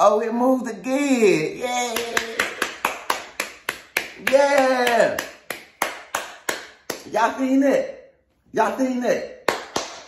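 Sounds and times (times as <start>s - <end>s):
person clapping hands: 1.8s - 7.2s, 9.4s - 10.0s.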